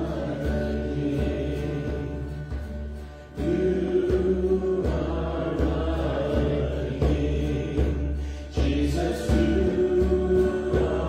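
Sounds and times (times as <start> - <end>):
acoustic guitars strummed: 0.0 - 11.0
man singing: 0.0 - 11.0
woman singing: 7.9 - 11.0.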